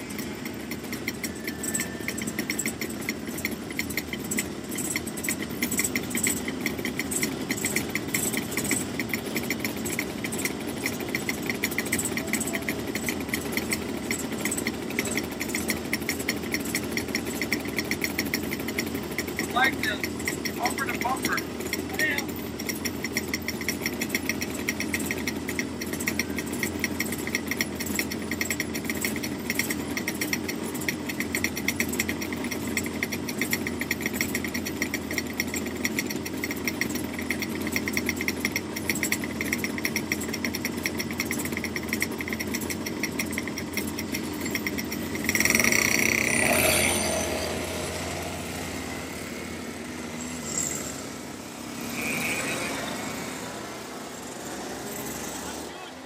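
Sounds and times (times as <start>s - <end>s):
kart engine idling: 0.0s - 56.0s
loud engine with high whine: 0.0s - 56.0s.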